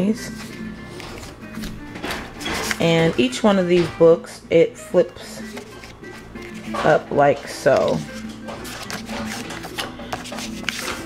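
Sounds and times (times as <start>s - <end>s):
soft background music: 0.0s - 11.0s
cardstock flap rustling and tapping: 0.4s - 4.0s, 5.4s - 11.0s.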